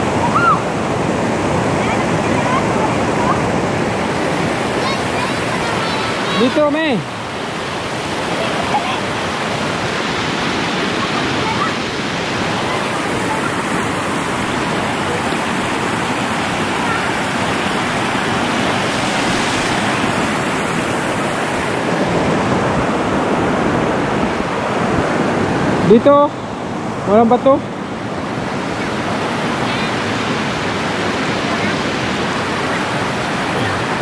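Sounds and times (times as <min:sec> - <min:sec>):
river flowing over rocks: 0:00.0 - 0:34.0.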